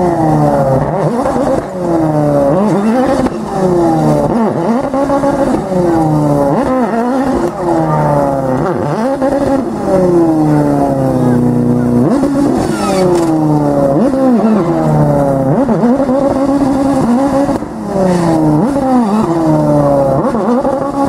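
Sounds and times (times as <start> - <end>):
car engine revving hard: 0.0 - 21.0.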